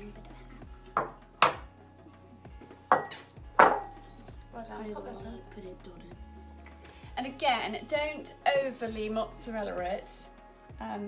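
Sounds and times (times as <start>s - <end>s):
ceramic bowls clinking on metal trays: 2.9s - 4.0s.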